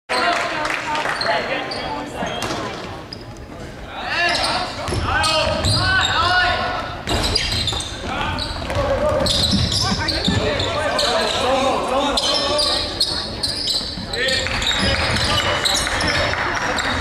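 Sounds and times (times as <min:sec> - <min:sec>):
voices echoing: 0:00.1 - 0:17.0
sneakers squeaking: 0:01.0 - 0:17.0.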